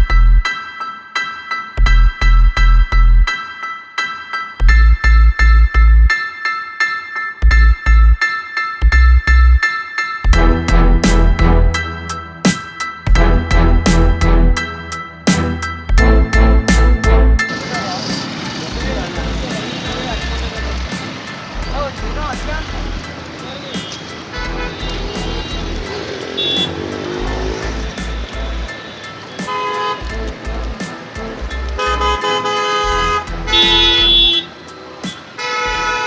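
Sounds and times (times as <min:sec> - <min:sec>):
background music with beat: 0:00.0 - 0:36.0
street traffic: 0:00.0 - 0:36.0
vehicle horns honking: 0:23.4 - 0:26.9, 0:28.7 - 0:30.2, 0:31.8 - 0:36.0.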